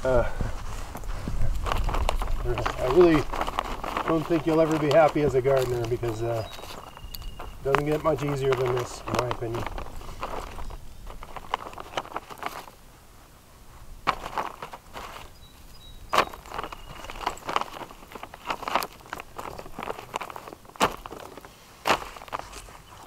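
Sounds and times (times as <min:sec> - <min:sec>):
plastic sheeting rustling: 0:00.0 - 0:12.8, 0:13.7 - 0:23.0.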